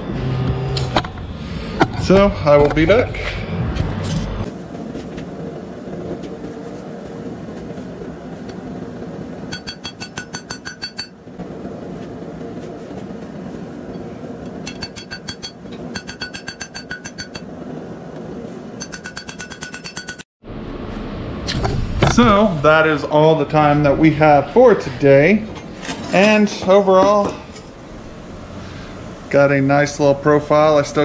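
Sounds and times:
hammer striking steel on anvil: 0:09.5 - 0:11.2, 0:14.5 - 0:17.5, 0:18.8 - 0:20.2.

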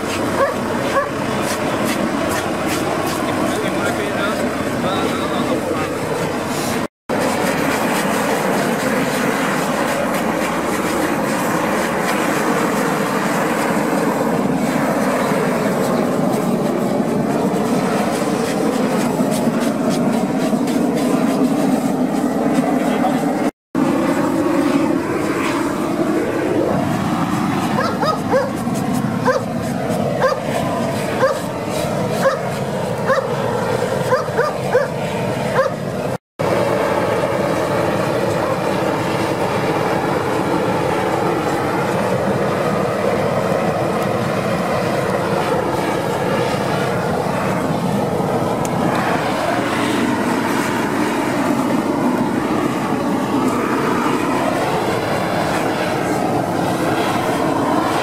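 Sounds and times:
gas torch roaring: 0:00.0 - 0:58.0
dog barking: 0:00.4 - 0:01.2, 0:27.8 - 0:28.6, 0:29.2 - 0:29.5, 0:30.2 - 0:30.4, 0:31.2 - 0:31.5, 0:32.2 - 0:32.4, 0:33.0 - 0:33.3, 0:34.1 - 0:35.8.

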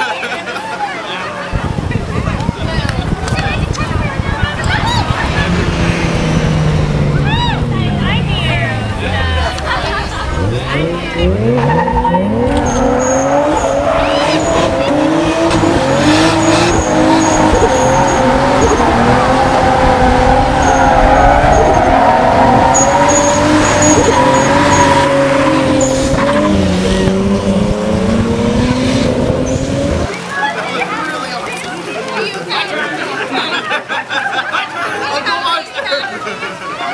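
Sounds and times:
tires squealing: 0:03.0 - 0:30.1
car engine revving high: 0:03.1 - 0:30.2.

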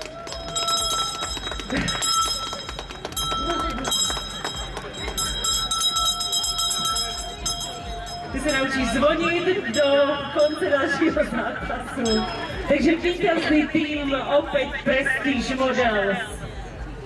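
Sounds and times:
steady high tones: 0:00.6 - 0:13.2
faint distant voices: 0:00.9 - 0:17.0.

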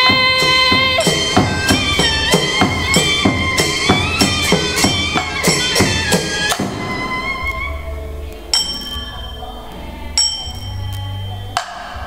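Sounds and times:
instrumental ensemble music: 0:00.0 - 0:12.0
metallic bell strike: 0:08.5 - 0:12.0.

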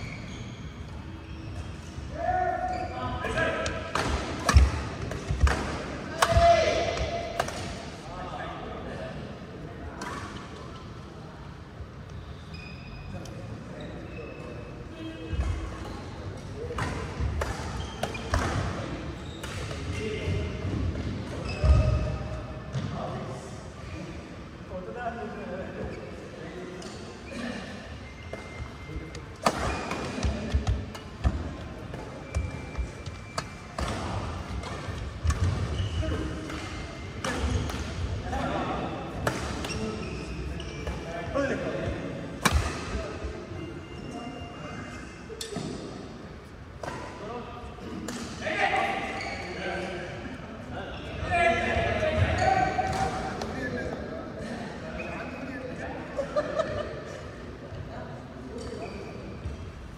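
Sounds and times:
court shoes squeaking: 0:00.0 - 0:08.0, 0:11.9 - 0:23.1, 0:25.7 - 0:50.1, 0:52.0 - 0:55.9, 0:56.6 - 0:59.9
voices of players: 0:00.1 - 0:59.9
racket hitting shuttlecock: 0:03.6 - 0:07.8, 0:42.4 - 0:43.0.

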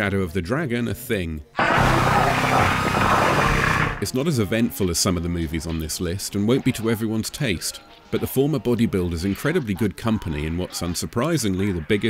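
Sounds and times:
submachine gun fire: 0:01.6 - 0:04.1.

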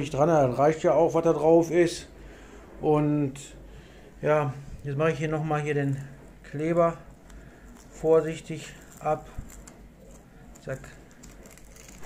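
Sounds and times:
paper tape crinkling: 0:05.6 - 0:12.0
masking tape peeling: 0:06.6 - 0:12.0.

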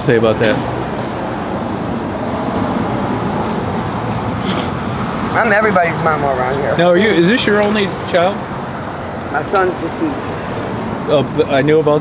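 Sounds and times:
road traffic rushing past: 0:00.0 - 0:12.0.

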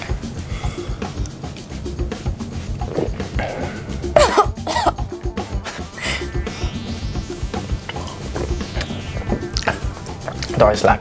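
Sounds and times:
background music with steady beat: 0:00.0 - 0:11.0
person coughing: 0:03.4 - 0:05.1.

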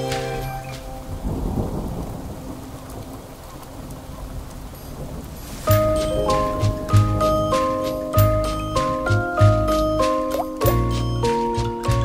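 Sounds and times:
rolling thunder: 0:00.0 - 0:09.7
steady rain: 0:00.0 - 0:12.0.

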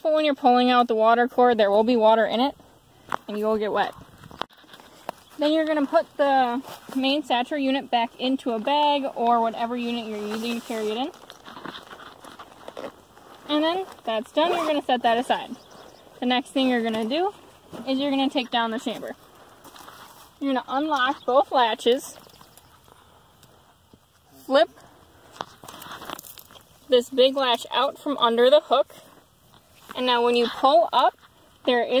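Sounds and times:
fabric bag rustling: 0:09.4 - 0:20.4.

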